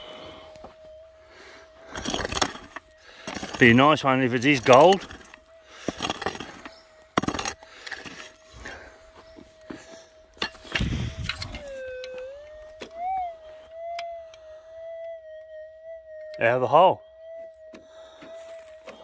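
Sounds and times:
detector tone wavering: 0:00.0 - 0:19.0
metal detector hum: 0:00.0 - 0:19.0.

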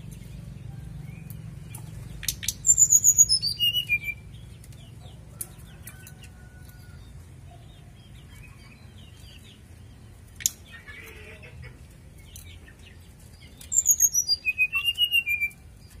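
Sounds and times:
songbird chirping: 0:00.0 - 0:16.0.

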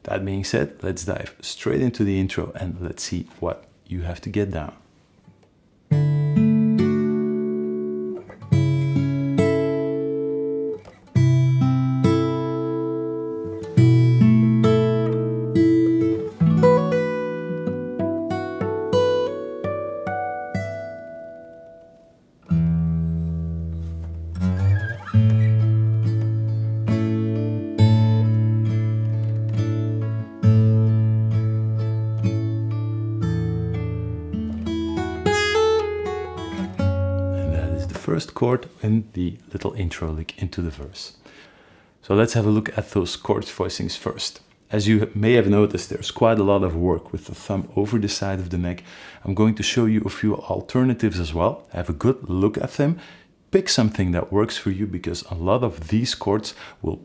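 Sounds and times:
fingerstyle acoustic guitar: 0:05.9 - 0:38.8.

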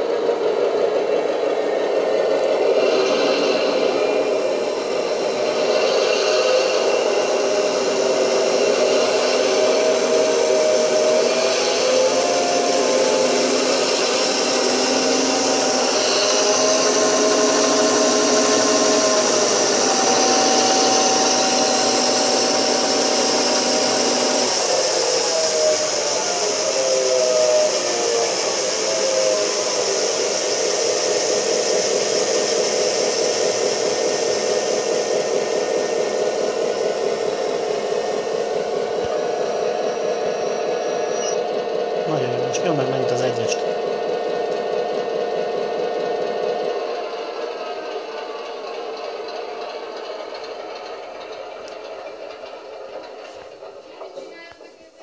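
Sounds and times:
humming tone shifting pitch: 0:00.0 - 0:45.9
model locomotive motor whirring: 0:00.0 - 0:55.0.

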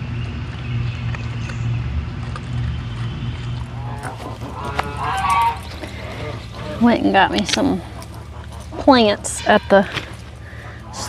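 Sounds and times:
steady low hum: 0:00.0 - 0:11.0
goose honks: 0:03.8 - 0:11.0.

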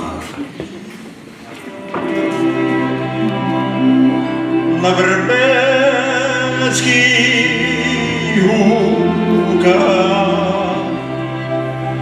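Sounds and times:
fiddles and cimbalom band: 0:01.6 - 0:12.0.

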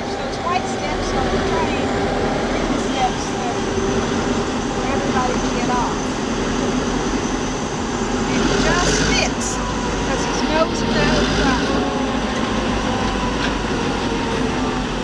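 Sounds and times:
faint voices: 0:00.0 - 0:07.2
diesel locomotive idling: 0:00.0 - 0:15.0.

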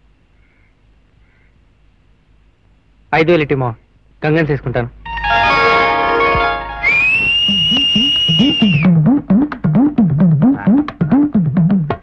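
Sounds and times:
held orchestral chord: 0:05.0 - 0:06.9
high whistle tone: 0:05.1 - 0:09.0.

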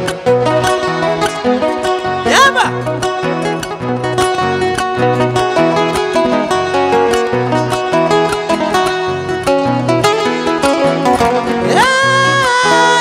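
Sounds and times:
acoustic guitars playing: 0:00.0 - 0:13.0.

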